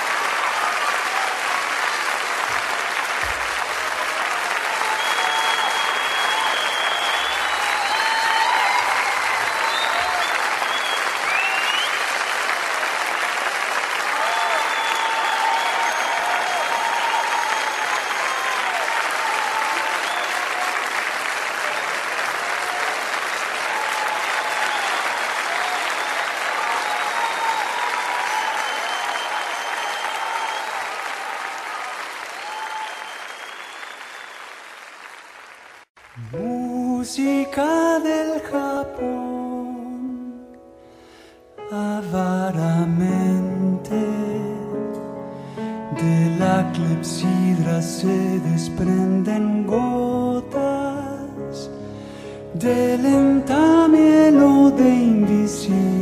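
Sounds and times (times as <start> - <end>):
shouted cheers: 0.0 - 34.8
audience applauding: 0.0 - 38.2
whistles: 4.8 - 12.2, 14.3 - 18.8, 19.7 - 20.6, 24.1 - 31.0, 32.4 - 34.6.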